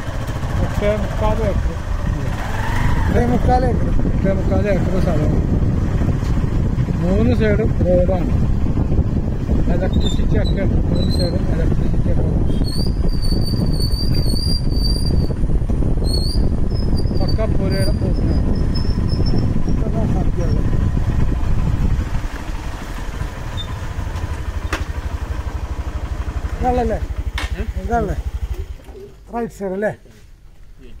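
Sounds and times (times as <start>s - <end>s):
road noise: 0.0s - 31.0s
vehicle engine rumble: 0.0s - 31.0s.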